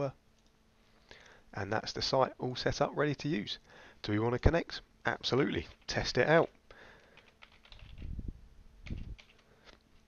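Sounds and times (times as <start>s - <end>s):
computer keyboard keystrokes: 7.0s - 8.1s, 8.8s - 9.4s.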